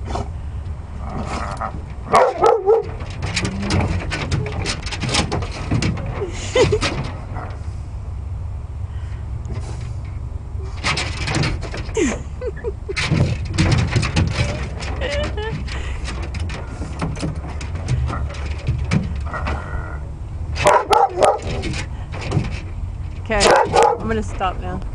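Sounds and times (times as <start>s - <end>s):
steady low rumble: 0.0s - 24.9s
dog barking and yipping: 2.1s - 3.1s, 20.6s - 21.8s, 23.4s - 24.1s
man laughing: 12.0s - 13.0s.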